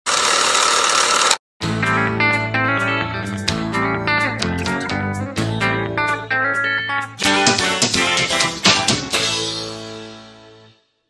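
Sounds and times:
mechanical ratcheting: 0.1 - 1.4
guitar music: 1.6 - 10.7.

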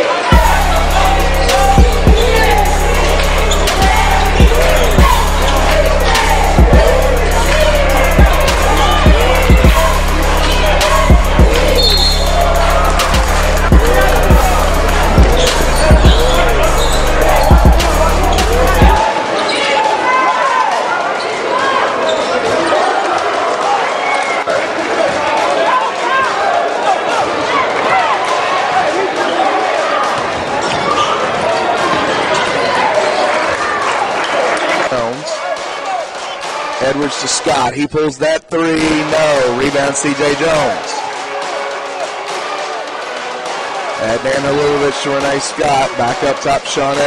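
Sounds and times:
crowd talking: 0.0 - 47.0.

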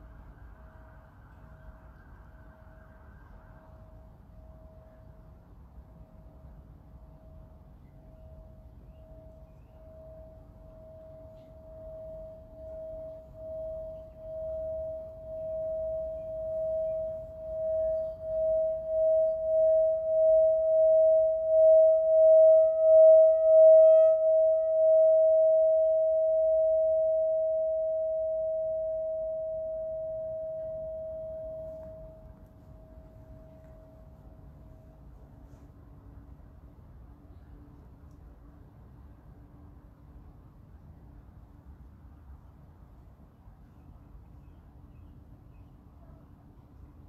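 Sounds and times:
singing bowl pulsing tone: 0.0 - 35.0.

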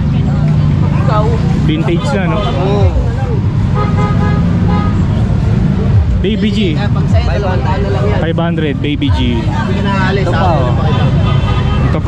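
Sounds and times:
traffic engine rumble: 0.0 - 12.0
car horn tooting: 3.8 - 5.1, 10.7 - 12.0.

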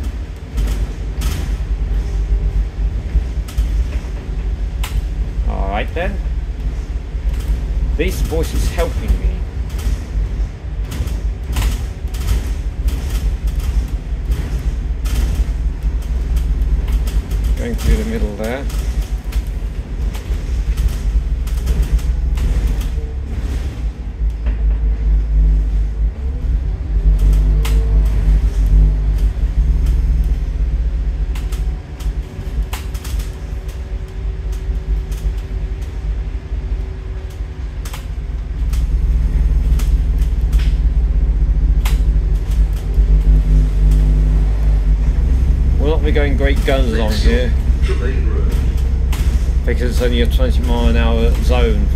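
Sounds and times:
bus diesel engine rumble: 0.0 - 51.9
sharp clicks and rattles: 0.0 - 51.9.

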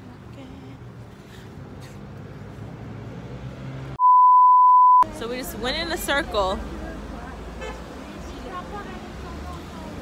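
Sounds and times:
road traffic rumble: 0.0 - 4.0, 5.0 - 10.0
faint voices of passers-by: 5.1 - 10.0.

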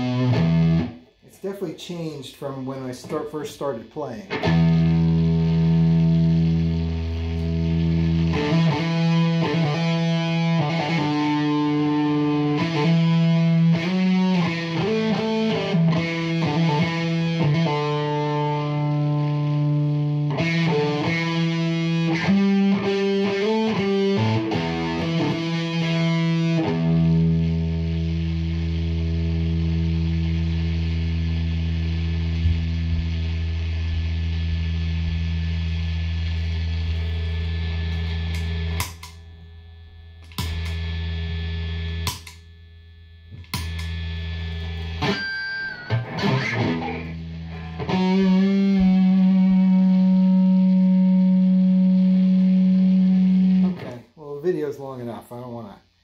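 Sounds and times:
distorted electric guitar: 0.0 - 54.2.

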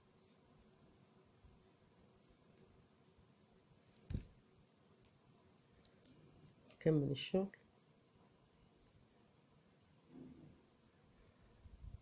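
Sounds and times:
knitting needles clicking: 3.9 - 4.4, 5.8 - 6.2.

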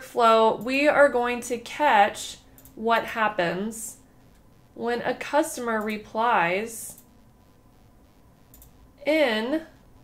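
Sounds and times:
computer mouse click: 2.5 - 2.8, 5.7 - 6.0, 6.9 - 7.2, 8.5 - 8.8.

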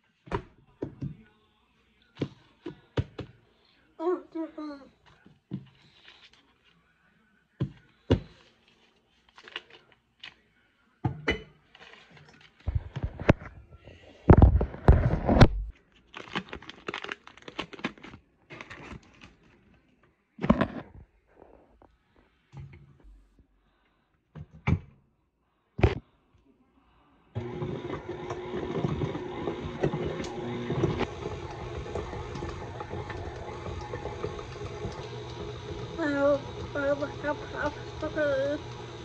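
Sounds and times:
knocks and thuds on a counter: 0.3 - 1.2, 2.2 - 3.3
paper wrappers crinkling and tearing: 5.8 - 6.8, 8.4 - 10.4, 11.7 - 13.4, 14.9 - 19.9.

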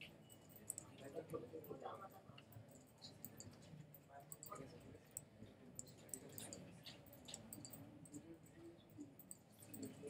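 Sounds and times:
faint indistinct murmur: 0.0 - 10.0.

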